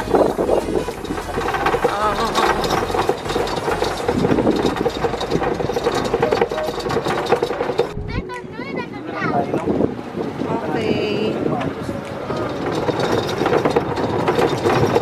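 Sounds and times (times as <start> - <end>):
golf cart running: 0.0 - 15.0.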